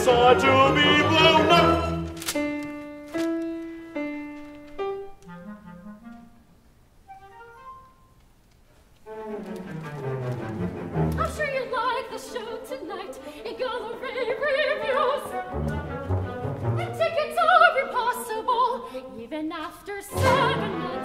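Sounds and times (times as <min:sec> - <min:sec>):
orchestra playing: 0:00.0 - 0:08.2, 0:09.0 - 0:13.0, 0:13.8 - 0:17.7, 0:20.1 - 0:21.0.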